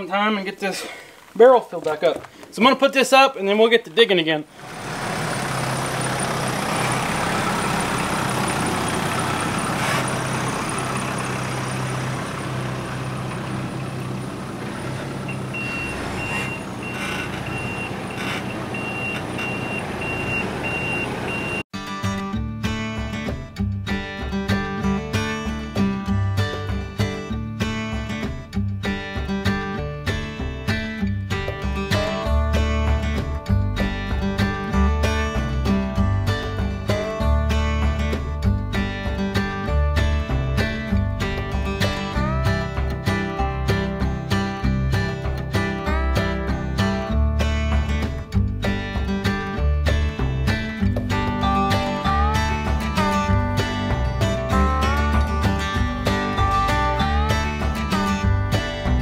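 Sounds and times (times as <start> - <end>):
acoustic guitar music: 4.0 - 59.0
diesel tractor engine running: 4.5 - 21.7, 33.7 - 59.0
rapid high beeping: 15.2 - 21.6.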